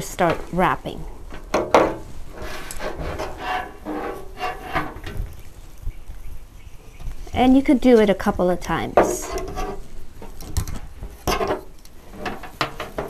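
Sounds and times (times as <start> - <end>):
dry stems rustling against wire: 0.0 - 13.0.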